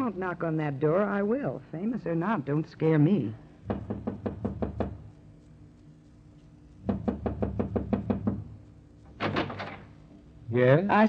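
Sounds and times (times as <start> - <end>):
knocking on a door: 3.6 - 5.1, 6.8 - 8.6.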